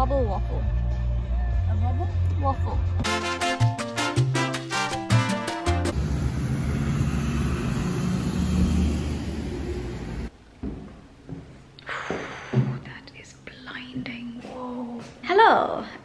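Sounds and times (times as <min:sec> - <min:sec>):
road traffic passing: 0:05.8 - 0:10.3.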